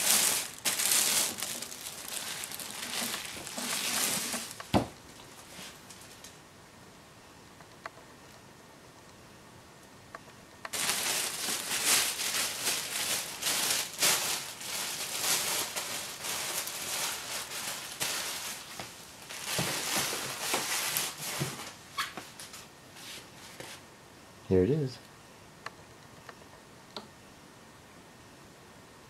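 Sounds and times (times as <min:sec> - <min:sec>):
plastic packaging crinkling: 0:00.0 - 0:06.3, 0:10.7 - 0:22.7.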